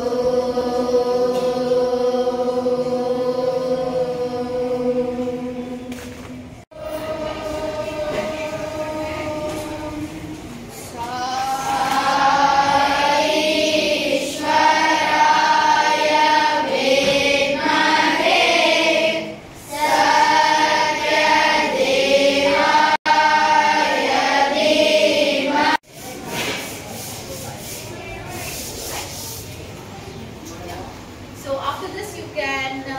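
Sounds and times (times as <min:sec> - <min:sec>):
boys singing in unison: 0:00.0 - 0:25.8.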